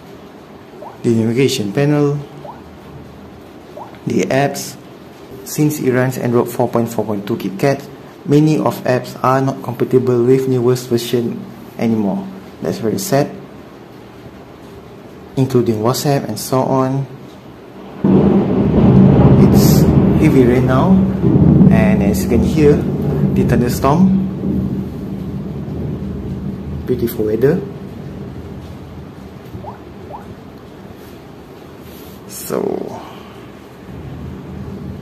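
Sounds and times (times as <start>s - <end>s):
thunder rumbling: 0.0s - 16.5s, 17.1s - 35.0s
heavy rain: 0.0s - 35.0s.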